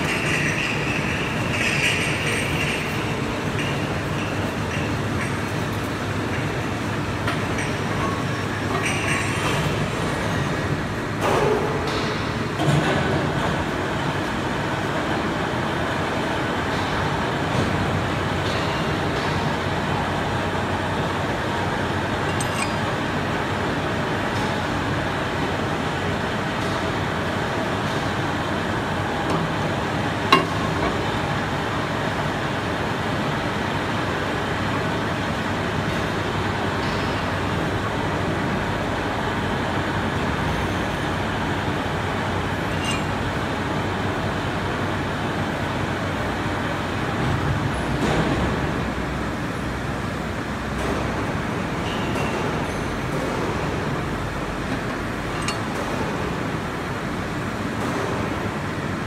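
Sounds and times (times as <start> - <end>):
workshop background noise: 0.0 - 59.0
metallic clink: 22.2 - 23.1, 42.6 - 43.4, 55.3 - 56.0.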